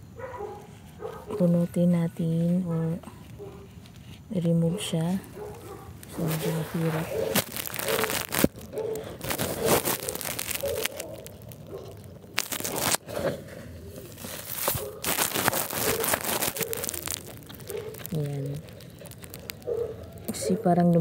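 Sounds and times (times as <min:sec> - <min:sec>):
potting mix crackling and rustling: 0:00.0 - 0:21.0.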